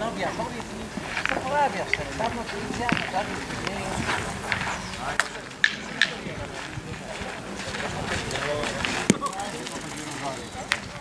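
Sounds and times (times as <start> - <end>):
background voices: 0.0 - 11.0
steel boules clacking: 5.2 - 6.3.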